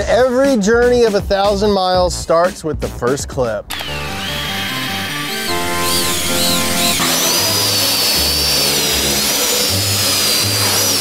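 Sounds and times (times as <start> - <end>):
background music with bass line: 0.0 - 11.0
fan motors whining: 3.7 - 11.0.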